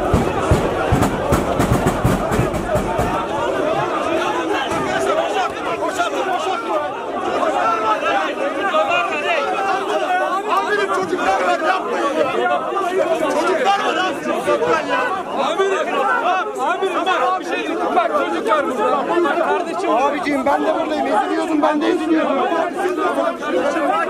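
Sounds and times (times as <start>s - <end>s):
crowd of men shouting: 0.0s - 24.0s.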